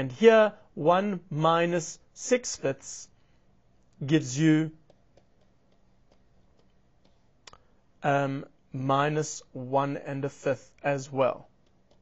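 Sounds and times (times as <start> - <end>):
stylus tapping on tablet screen: 4.8 - 7.3, 11.6 - 12.0.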